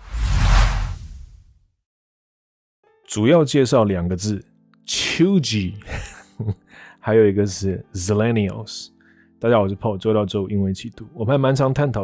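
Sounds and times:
whoosh sound effect: 0.0 - 1.4.

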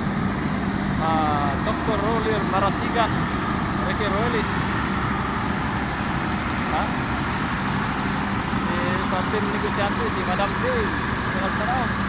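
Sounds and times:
engine running: 0.0 - 12.0.

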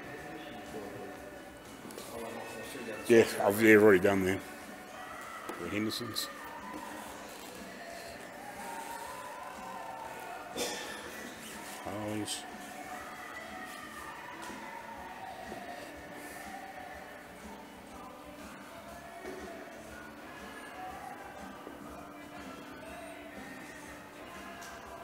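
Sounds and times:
background music over speakers: 0.0 - 25.0.

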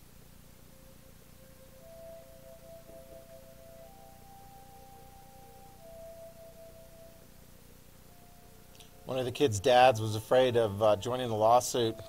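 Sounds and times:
faint film soundtrack music: 0.0 - 12.0
low steady hum: 0.0 - 12.0.

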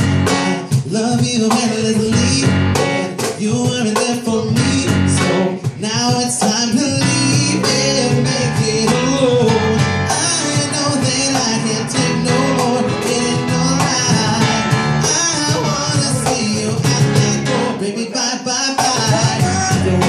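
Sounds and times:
electric bass: 0.0 - 0.8, 1.7 - 3.2, 4.3 - 5.6, 6.8 - 18.0, 19.0 - 20.0
cajon beat: 0.0 - 20.0
keyboard: 0.0 - 20.0
lead vocal singing: 0.3 - 20.0.

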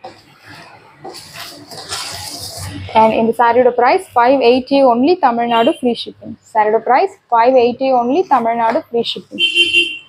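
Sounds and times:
fabric rustling: 0.0 - 3.2.

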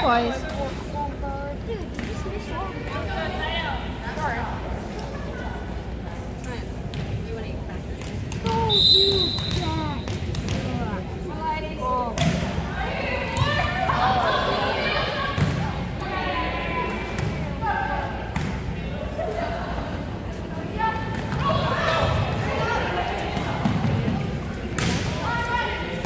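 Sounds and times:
referee whistle: 8.6 - 10.0
volleyball struck with thumps: 9.3 - 10.9.

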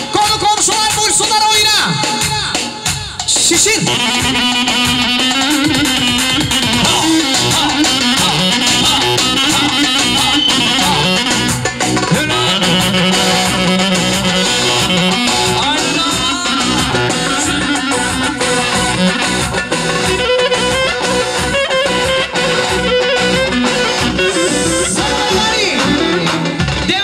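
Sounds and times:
band playing dance music: 0.0 - 27.0
clarinet melody: 3.8 - 26.4.

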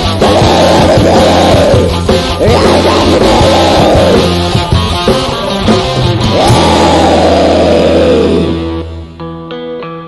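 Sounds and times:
distorted guitar chord: 0.0 - 9.2.

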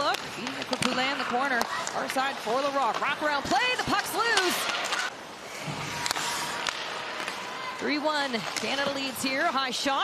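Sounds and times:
arena crowd noise: 0.0 - 10.0
stick hitting puck: 0.1 - 5.1, 5.7 - 7.4.

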